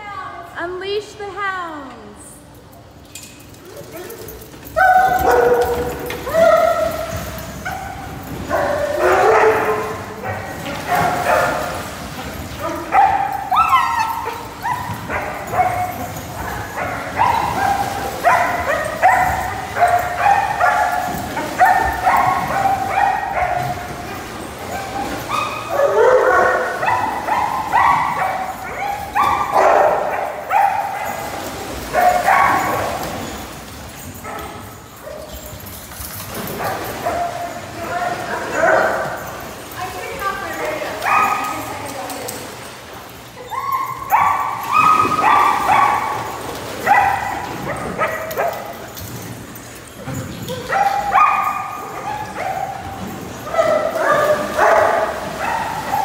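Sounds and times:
dogs barking and yipping: 3.4s - 56.0s.

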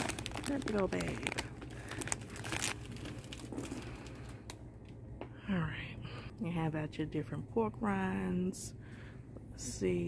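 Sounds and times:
plastic snack bags crinkling: 0.0s - 4.6s
low steady hum: 0.0s - 10.0s.

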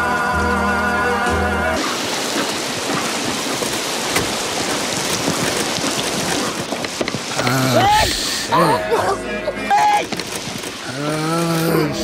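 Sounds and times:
heavy rain downpour: 0.0s - 12.0s.

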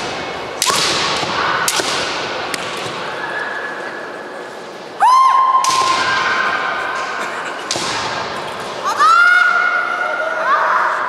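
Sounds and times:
bamboo swords clashing: 0.0s - 3.0s
high-pitched shout: 8.8s - 11.0s.

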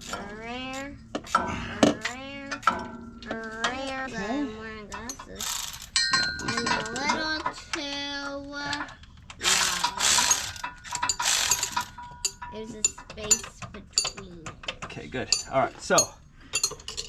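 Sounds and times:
metal clinks of tools and bolts: 4.9s - 7.6s, 8.8s - 17.0s.

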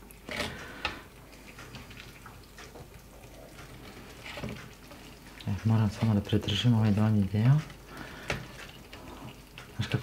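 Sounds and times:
wet pattering of filling: 0.0s - 10.0s.

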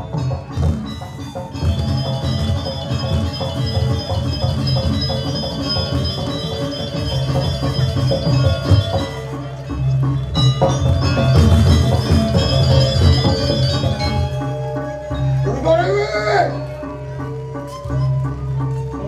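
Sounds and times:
metallophone notes ringing: 0.0s - 19.0s.

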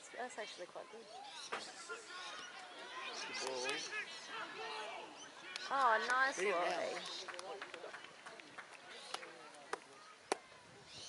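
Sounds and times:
distant voices calling and shouting: 1.0s - 6.3s.

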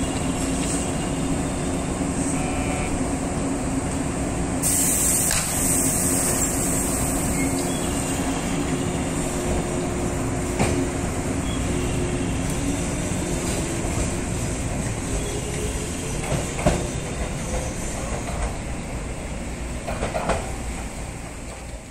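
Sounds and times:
electric train running rumble: 0.0s - 21.9s
train wheels clacking over rail joints: 19.8s - 20.6s.

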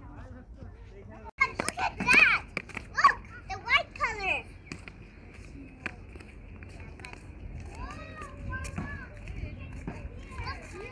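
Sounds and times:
children calling and chattering: 0.0s - 10.9s.

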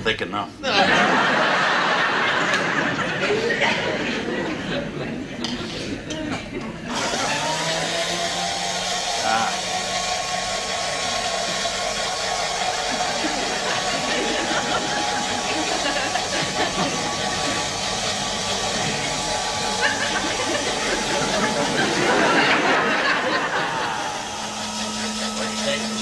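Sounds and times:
milkshake mixer motor whining: 6.9s - 26.0s.

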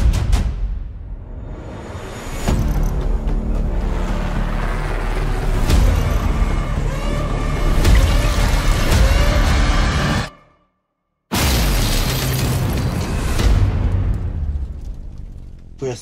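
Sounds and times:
dramatic trailer music: 0.0s - 15.8s.

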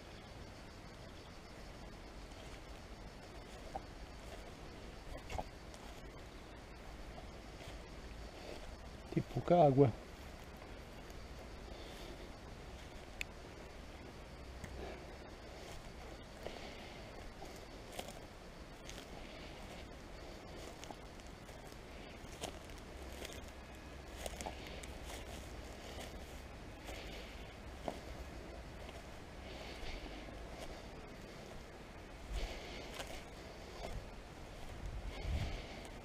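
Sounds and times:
low steady rumble: 0.0s - 36.0s
footsteps on dry grass: 1.7s - 36.0s.

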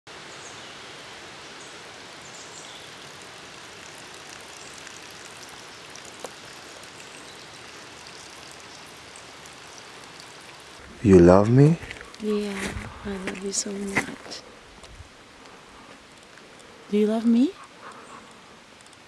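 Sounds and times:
rushing hiss of forest: 0.1s - 19.0s.

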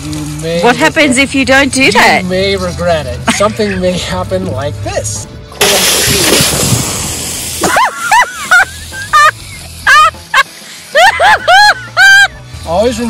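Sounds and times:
loud hissing water spray: 5.6s - 13.0s.

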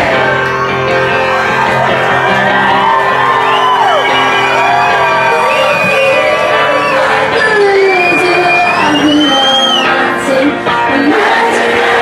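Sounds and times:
crowd cheering and shouting: 0.0s - 12.0s
electric guitars holding chord: 0.0s - 12.0s.

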